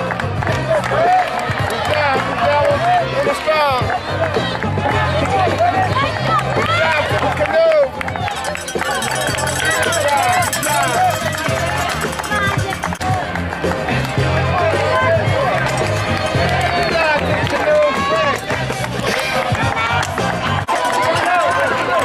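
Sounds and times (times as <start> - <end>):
spectators shouting and cheering: 0.0 - 22.0
music with stepping bass line: 8.2 - 17.6.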